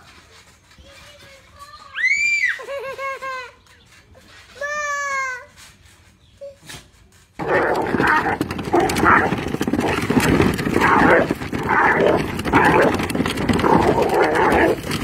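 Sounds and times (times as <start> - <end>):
dog growling: 7.4 - 15.0.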